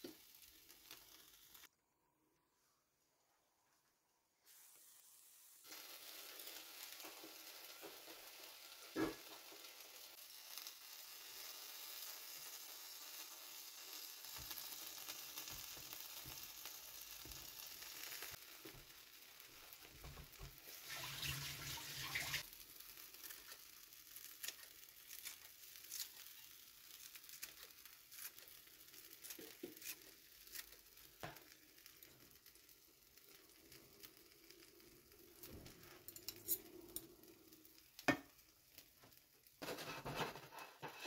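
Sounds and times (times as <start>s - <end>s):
food sizzling in a frying pan: 0.0s - 1.7s, 4.4s - 41.0s.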